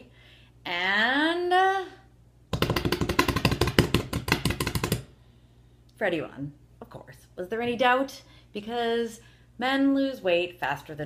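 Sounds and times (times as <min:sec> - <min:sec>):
hands drumming on a tabletop: 0:02.5 - 0:05.1.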